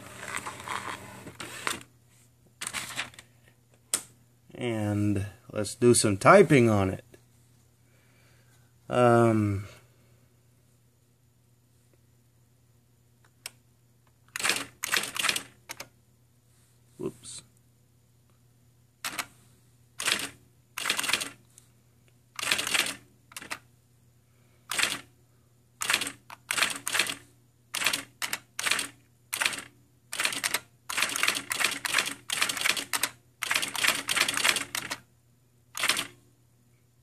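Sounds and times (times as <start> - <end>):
electronic typewriter typing: 14.3 - 15.9, 19.0 - 19.3, 20.0 - 21.4, 22.4 - 23.6, 24.7 - 25.1, 25.8 - 35.0, 35.8 - 36.2.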